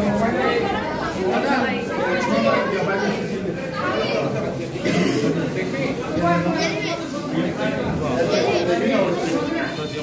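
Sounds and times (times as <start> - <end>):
crowd chatter in echoing hall: 0.0 - 10.0.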